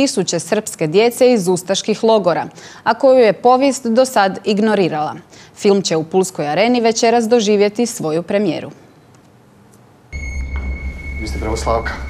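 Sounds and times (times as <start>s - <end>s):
woman speaking: 0.0s - 8.9s
high-pitched whine: 10.1s - 12.0s
low hum: 10.1s - 12.0s.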